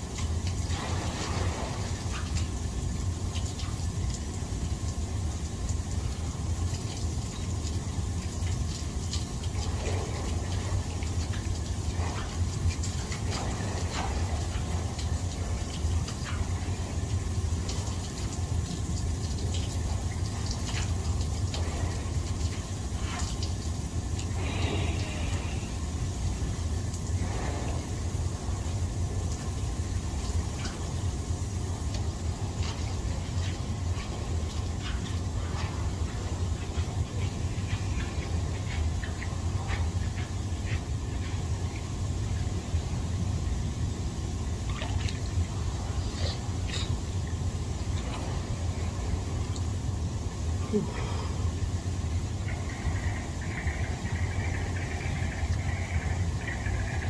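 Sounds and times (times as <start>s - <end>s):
jacuzzi jets bubbling: 0.0s - 57.0s
low hum: 0.0s - 57.0s
small water splashes: 0.0s - 57.0s.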